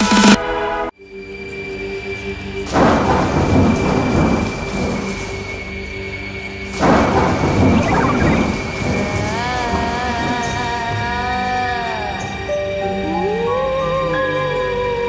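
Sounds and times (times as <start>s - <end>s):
eerie drone: 1.1s - 15.0s
rolling thunder claps: 2.7s - 5.6s, 6.8s - 10.9s
warbling melody: 7.7s - 8.8s.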